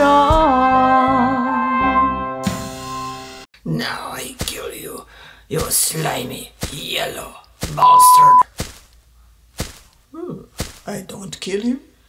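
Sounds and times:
censor bleep: 7.8 - 8.4
sharp thwacks: 9.6 - 9.9, 10.6 - 10.9.

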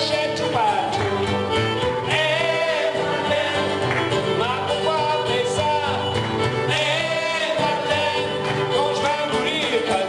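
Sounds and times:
fiddle with sliding notes: 0.0 - 10.0
strummed acoustic guitar: 0.0 - 10.0
button accordion: 0.2 - 10.0.

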